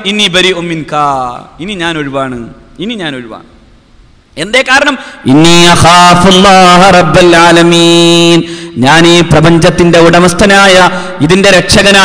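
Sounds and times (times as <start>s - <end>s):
man speaking: 0.0s - 3.6s, 4.4s - 12.0s.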